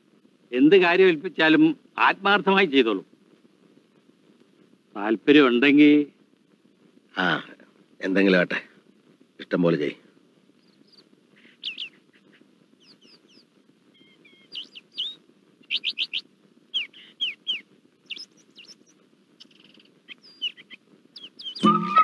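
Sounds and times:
faint steady low hum: 0.0s - 22.0s
small birds chirping: 9.4s - 22.0s.

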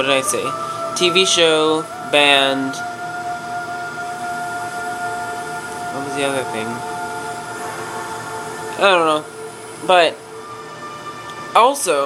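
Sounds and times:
steady high whine: 0.0s - 12.0s.

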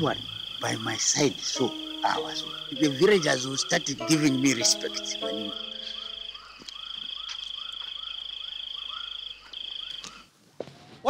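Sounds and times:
high pulsing insect trill: 0.0s - 10.2s
short arched animal calls: 0.1s - 8.2s.

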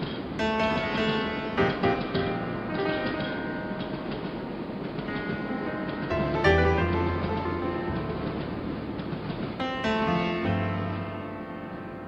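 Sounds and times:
subway train wheels on rails: 0.0s - 6.3s, 7.0s - 9.6s.

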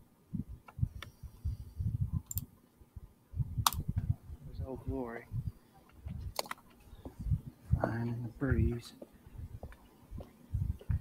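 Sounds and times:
sharp click: 3.6s - 3.9s, 6.3s - 6.6s
man speaking: 4.5s - 5.3s, 7.7s - 9.0s.

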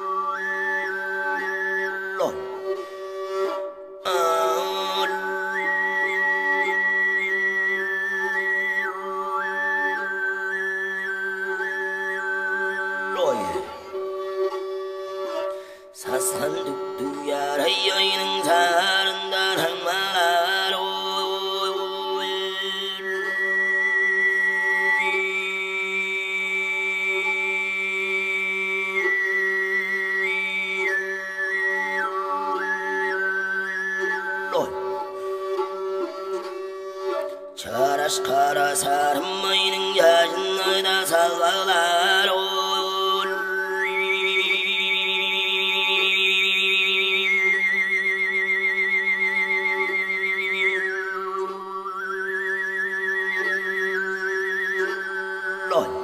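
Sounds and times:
high whistling overtone melody: 0.0s - 3.6s, 4.6s - 13.4s, 46.8s - 56.0s.

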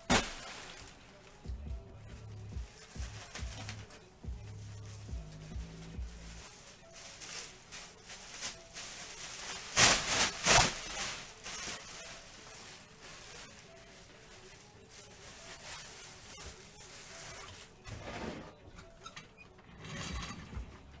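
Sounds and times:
foil wrappers crinkling: 0.0s - 1.5s, 2.2s - 17.8s.

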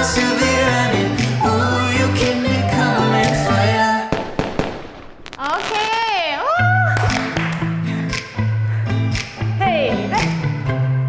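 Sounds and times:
music: 0.0s - 4.2s, 6.5s - 11.0s
fireworks popping and crackling: 4.1s - 7.6s.

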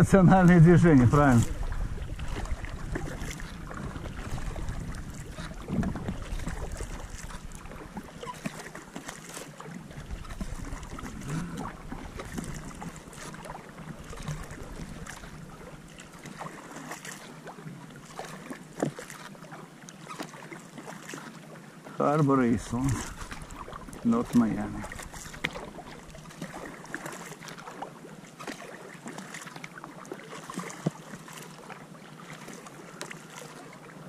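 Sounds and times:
wind rumble on microphone: 0.0s - 8.1s, 10.0s - 13.0s
paddle splashing through water: 0.0s - 34.0s
water running off paddle blades: 0.0s - 34.0s.

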